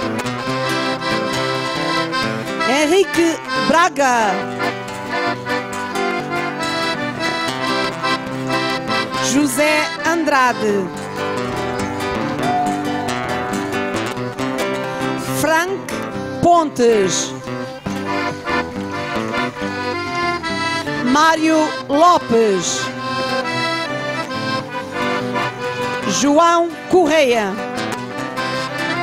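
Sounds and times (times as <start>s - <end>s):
accordion playing: 0.0s - 29.0s
lively instrumental solo: 0.0s - 29.0s.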